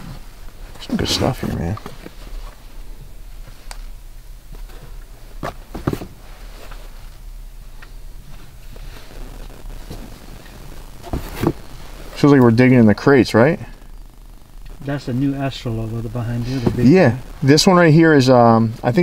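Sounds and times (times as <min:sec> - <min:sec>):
low hum: 0:00.0 - 0:19.0.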